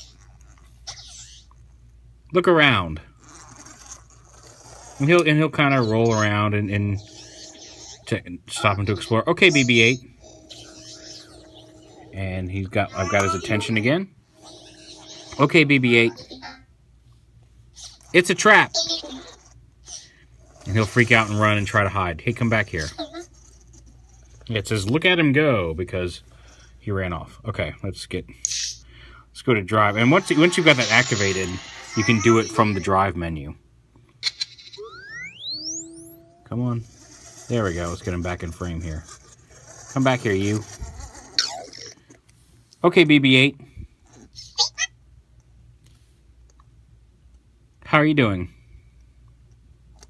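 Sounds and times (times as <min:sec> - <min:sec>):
faint steady hum: 0:00.0 - 0:50.0
robot chirps and warbling beeps: 0:05.7 - 0:16.6, 0:29.9 - 0:32.9, 0:34.7 - 0:38.0
quick electronic beeps: 0:34.8 - 0:36.5
rising electronic whistle: 0:34.8 - 0:36.8.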